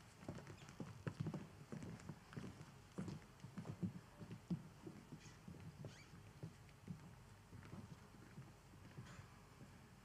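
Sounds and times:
footsteps on hard stage floor: 0:00.3 - 0:09.8.

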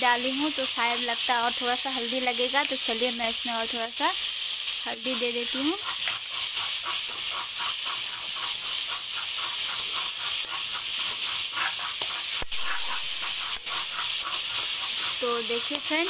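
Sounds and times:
vegetables sizzling in oil: 0:00.0 - 0:16.0
metal spatula scraping pan: 0:05.8 - 0:16.0.

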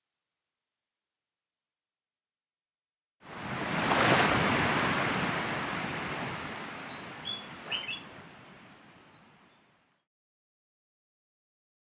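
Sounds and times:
short bird chirps: 0:06.9 - 0:08.1.

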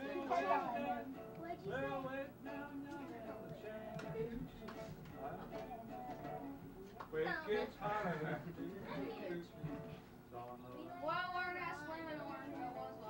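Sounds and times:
voices singing or talking: 0:00.0 - 0:09.9, 0:10.5 - 0:13.0
acoustic guitar playing: 0:00.0 - 0:10.0, 0:10.8 - 0:13.0.

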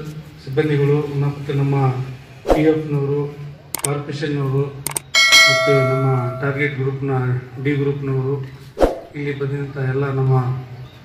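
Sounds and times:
bright bell-like ding: 0:05.0 - 0:06.8.

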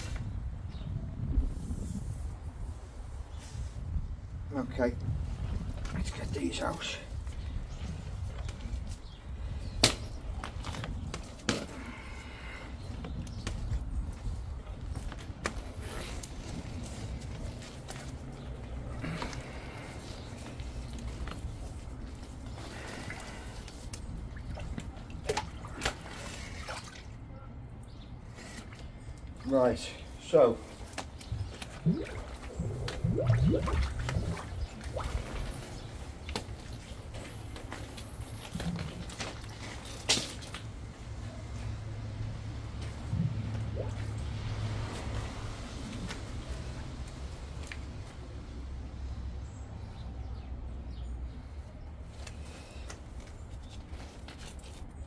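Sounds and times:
water dripping and sloshing: 0:13.0 - 0:29.5, 0:30.7 - 0:40.9, 0:42.6 - 0:48.1.

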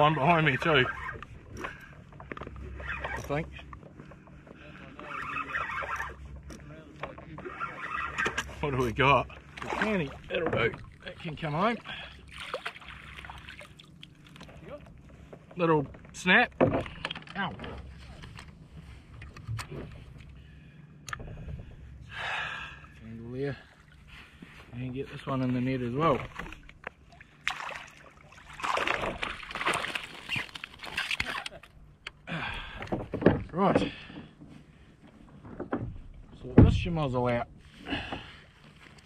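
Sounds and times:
fishing reel gear whir: 0:05.0 - 0:06.4, 0:07.4 - 0:08.7.

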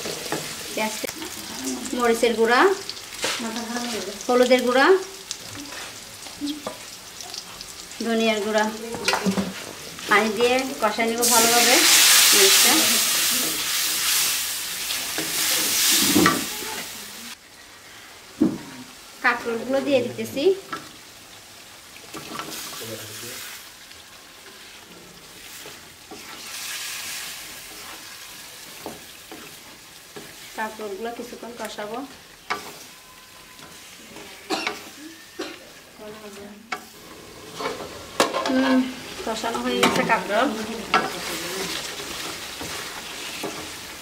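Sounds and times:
spice paste sizzling in a pan: 0:00.0 - 0:44.0
spatula scraping metal pan: 0:36.8 - 0:43.7.

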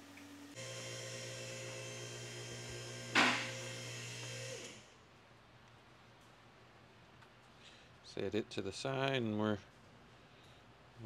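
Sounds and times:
machine motor hum: 0:00.3 - 0:04.9.

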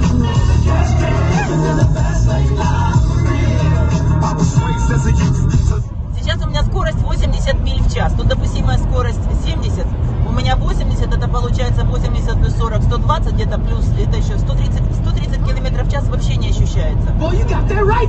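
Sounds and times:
car road and engine rumble: 0:00.0 - 0:18.0
radio talk show voices: 0:00.0 - 0:18.0
song on car radio: 0:00.0 - 0:18.0.

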